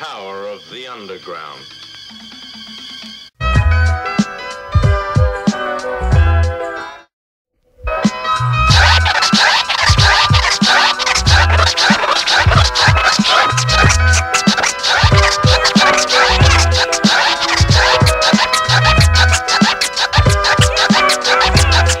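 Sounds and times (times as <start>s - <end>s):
hip-hop beat with drums and bass: 3.4s - 6.9s, 7.9s - 22.0s
turntable scratching: 8.7s - 22.0s.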